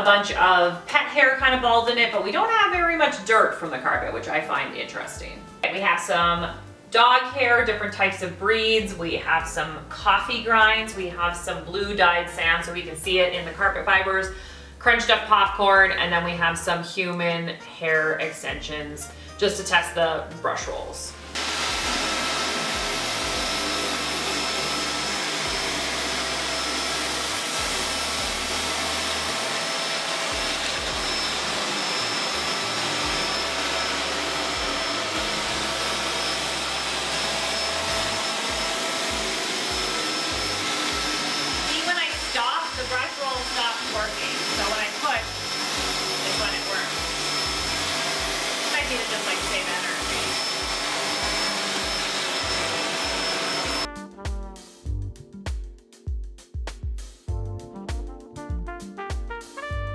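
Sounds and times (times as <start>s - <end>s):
upright vacuum running on carpet: 21.3s - 53.9s.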